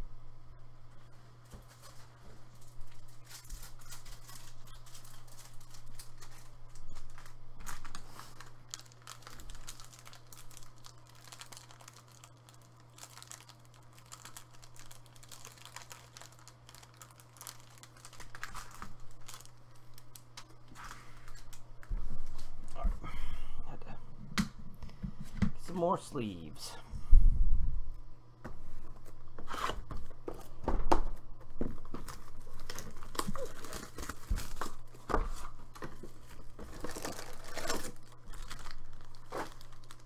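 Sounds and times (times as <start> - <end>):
steady low hum: 0.0 - 40.0
crinkling and rustling: 1.2 - 22.9, 28.7 - 40.0.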